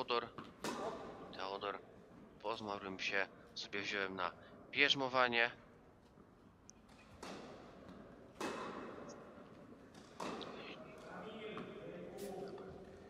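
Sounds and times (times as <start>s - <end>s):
racket striking tennis ball: 0.4s - 1.3s, 6.9s - 9.2s, 9.8s - 10.6s.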